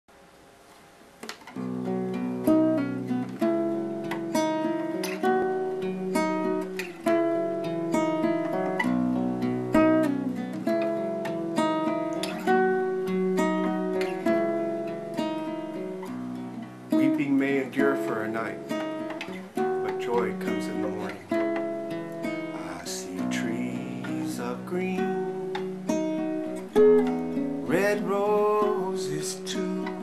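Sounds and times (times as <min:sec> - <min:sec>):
classical guitar playing: 0:01.2 - 0:30.0.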